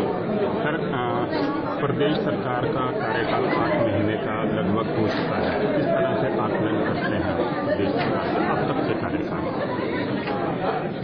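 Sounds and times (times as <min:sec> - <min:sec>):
several voices chattering: 0:00.0 - 0:11.0.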